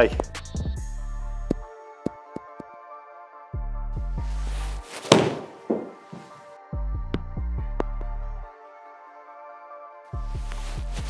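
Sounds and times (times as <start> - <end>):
background music: 0.0 - 11.0
golf club striking ball: 5.1 - 6.1.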